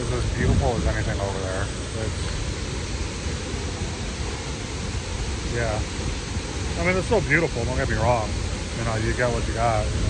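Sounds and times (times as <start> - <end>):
waterfall rushing: 0.0 - 10.0
wind rumbling on microphone: 0.0 - 10.0.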